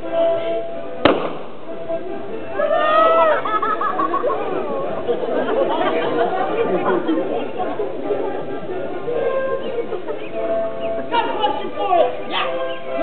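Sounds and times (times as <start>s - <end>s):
music: 0.0s - 13.0s
indistinct chatter of voices: 1.9s - 13.0s.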